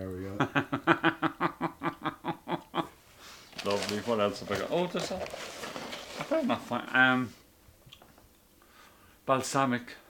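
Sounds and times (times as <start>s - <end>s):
man laughing: 0.3s - 2.9s.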